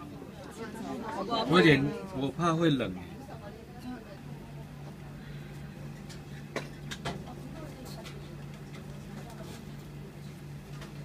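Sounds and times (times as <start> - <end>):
kitchen room hum: 0.0 - 11.0.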